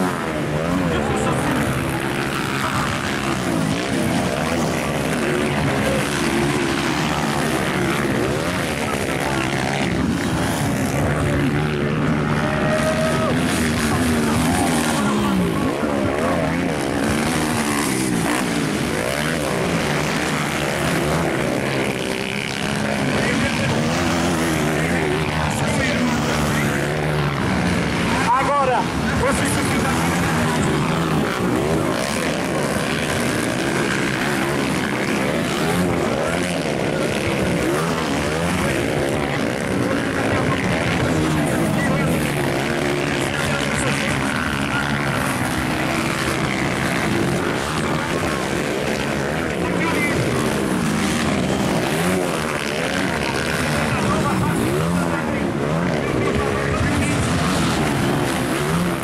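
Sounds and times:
motocross bikes revving: 0.0 - 59.0.

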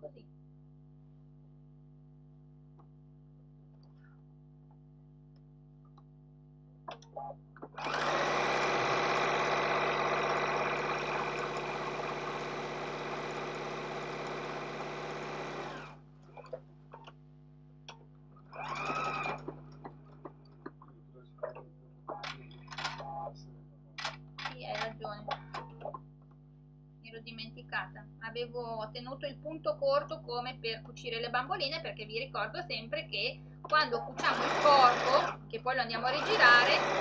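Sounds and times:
sewing machine stitching: 7.7 - 16.0, 18.5 - 19.6, 34.2 - 35.4, 36.1 - 37.0.

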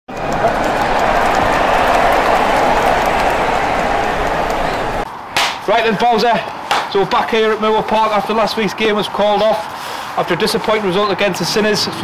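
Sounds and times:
crowd applause and cheering: 0.1 - 5.1.

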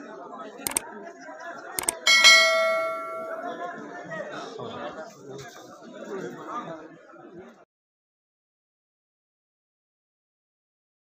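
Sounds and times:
faint crowd chatter: 0.0 - 7.6
mouse clicks: 1.8 - 2.0
bright bell ding: 1.8 - 3.7.

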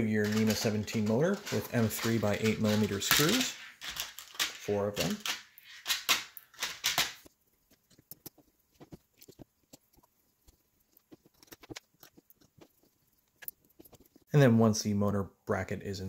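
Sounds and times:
short clatter of parts: 0.2 - 7.3.

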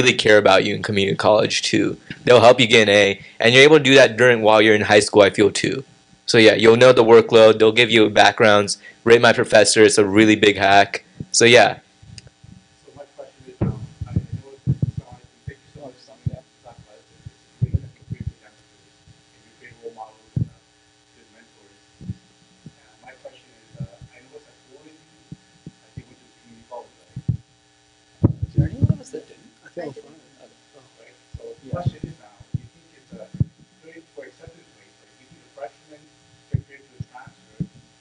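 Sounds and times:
electrical mains hum: 0.0 - 38.0
faint murmuring voices: 12.4 - 27.6, 28.3 - 38.0
soft low thumps: 13.5 - 19.2, 20.4 - 20.6, 22.0 - 22.8, 23.7 - 24.2, 27.1 - 27.6, 28.2 - 29.1, 31.3 - 33.8, 36.4 - 37.9.

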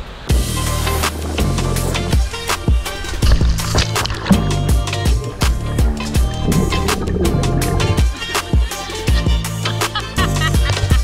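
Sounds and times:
music with drum beat and bass: 0.3 - 11.0.

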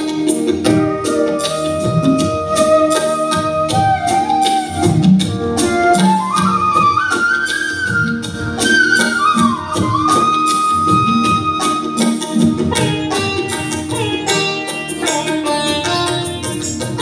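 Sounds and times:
flute-like melody: 0.0 - 16.3
keyboards: 0.0 - 17.0
tabla and percussion beat: 0.0 - 17.0.

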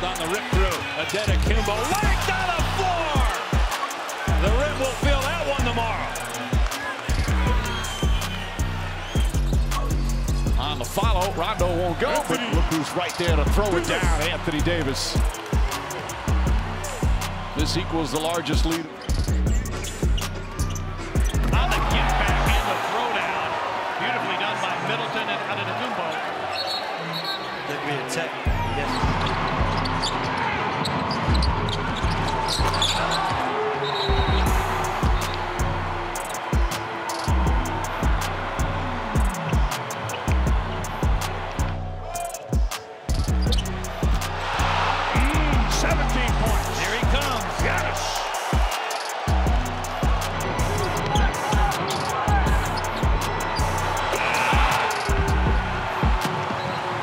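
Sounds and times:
music with heavy bass beat: 4.3 - 11.8, 34.2 - 56.3.

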